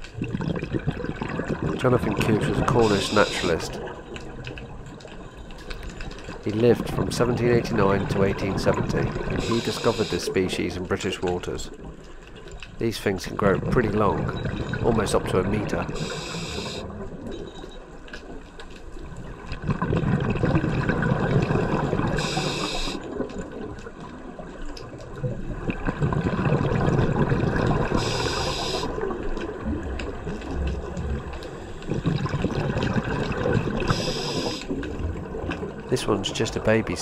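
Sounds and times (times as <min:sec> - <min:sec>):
gurgling exhaled bubbles: 0:00.0 - 0:12.0, 0:12.8 - 0:17.6, 0:19.0 - 0:37.0
regulator inhale hiss: 0:09.4 - 0:10.2, 0:16.0 - 0:16.9, 0:22.2 - 0:23.0, 0:28.0 - 0:29.0, 0:33.9 - 0:34.7.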